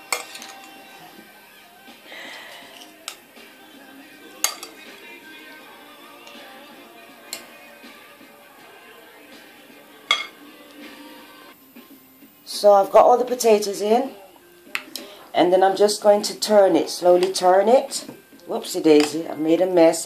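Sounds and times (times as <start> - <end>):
spoon clinking against glass bowl: 0.0 - 0.8, 4.4 - 4.8, 10.1 - 10.4
faint background music: 0.0 - 20.0.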